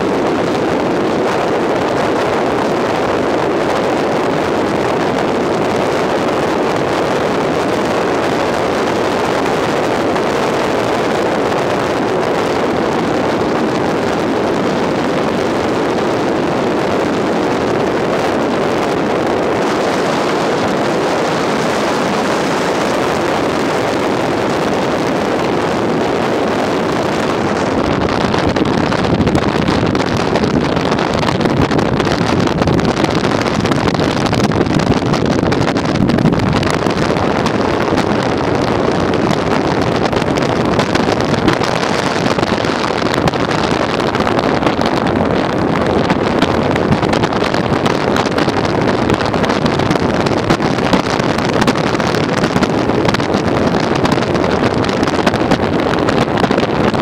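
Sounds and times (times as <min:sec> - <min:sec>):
road noise: 0:00.0 - 0:57.0
wind rushing on microphone: 0:00.0 - 0:57.0.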